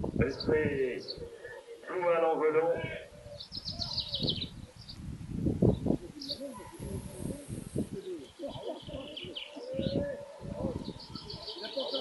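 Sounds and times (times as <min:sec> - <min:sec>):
indistinct voices: 0:00.0 - 0:04.1, 0:05.9 - 0:12.0
birds chirping and calling: 0:00.0 - 0:12.0.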